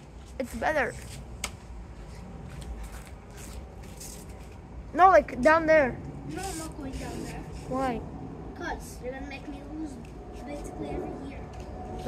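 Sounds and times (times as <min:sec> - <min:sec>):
steady low rumble: 0:01.2 - 0:12.0.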